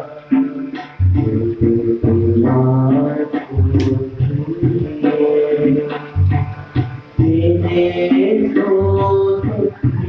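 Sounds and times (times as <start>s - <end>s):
tabla drumming: 0.0s - 10.0s.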